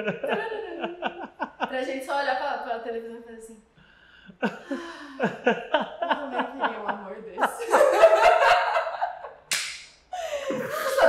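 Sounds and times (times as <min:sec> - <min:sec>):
people laughing hard: 0:00.0 - 0:01.7, 0:04.4 - 0:06.9, 0:07.5 - 0:09.3, 0:10.2 - 0:11.0
hand clap: 0:09.5 - 0:10.1.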